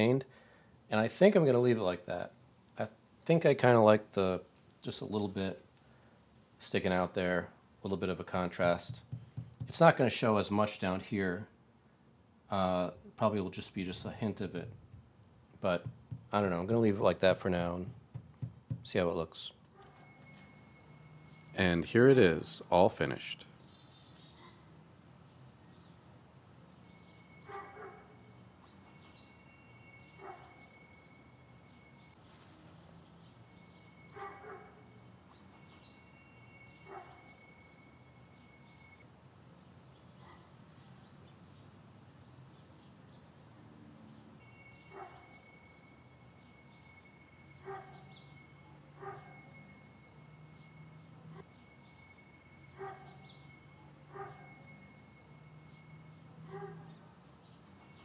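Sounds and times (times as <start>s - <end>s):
faint steady high tone: 12.5s - 23.6s, 26.6s - 41.0s, 44.0s - 58.0s
distant dog barking: 27.4s - 28.2s, 30.2s - 30.7s, 34.1s - 34.9s, 36.8s - 37.4s, 40.2s - 40.6s, 44.9s - 45.4s, 47.6s - 48.1s, 48.9s - 49.6s, 52.7s - 53.3s, 54.0s - 54.8s, 56.4s - 57.2s.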